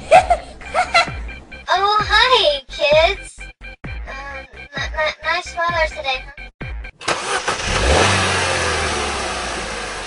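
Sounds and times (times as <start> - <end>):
cartoon car engine drone: 7.0 - 10.0.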